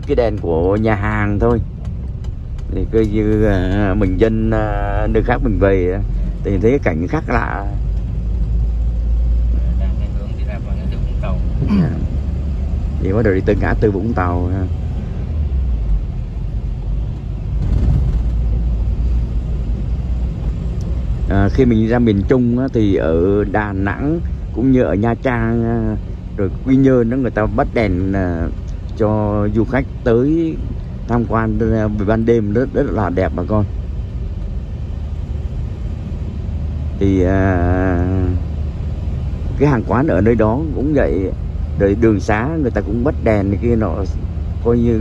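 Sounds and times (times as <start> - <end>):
car engine rumble from inside: 0.0 - 45.0
tyres on wet road: 0.0 - 45.0.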